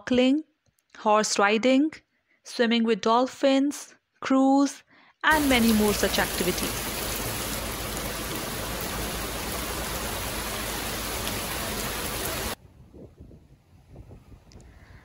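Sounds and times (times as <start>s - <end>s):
heavy rain on a pond: 5.3s - 12.6s.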